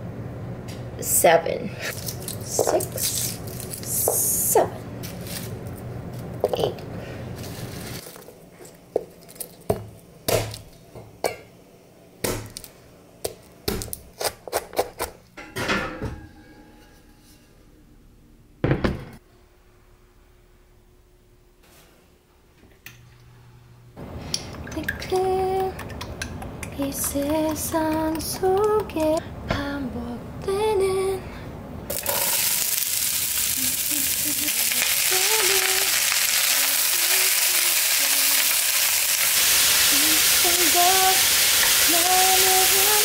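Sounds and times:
pots and utensils clattering: 15.4 - 17.5.

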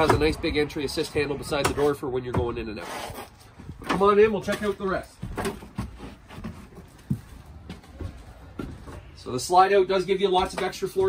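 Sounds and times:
footsteps on hollow steps: 3.5 - 9.2.

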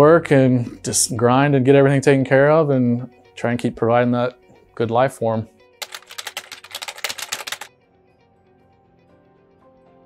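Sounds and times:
soft background music: 0.0 - 10.0
typewriter key clicks: 5.8 - 7.7.

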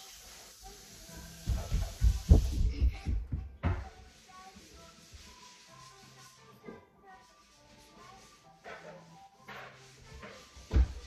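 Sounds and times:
faint music from television speaker: 0.0 - 11.0.

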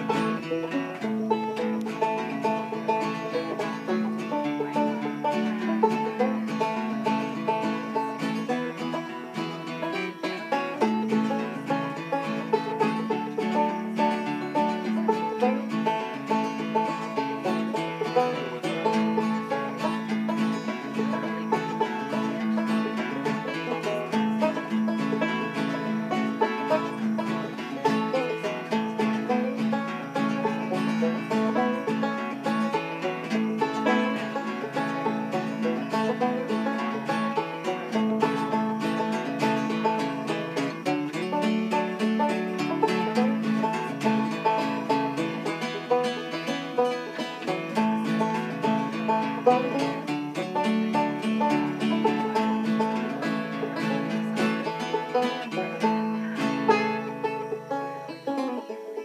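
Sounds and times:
acoustic guitar accompaniment: 0.0 - 59.0
banjo tune: 0.0 - 59.0.

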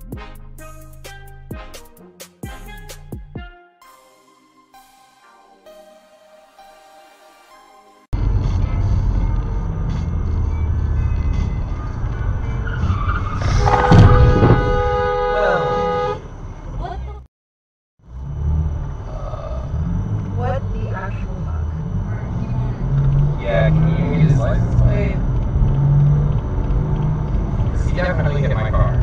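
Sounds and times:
car road noise: 8.1 - 17.3, 18.0 - 29.0
car horn honking: 13.2 - 16.4
sharp loud bang: 13.4 - 14.9.

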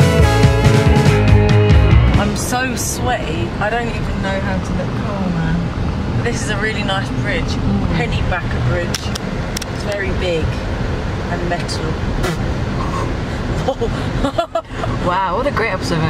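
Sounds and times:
car road and engine rumble: 0.0 - 16.0
woman talking: 2.2 - 10.6, 11.3 - 12.0, 13.6 - 16.0.

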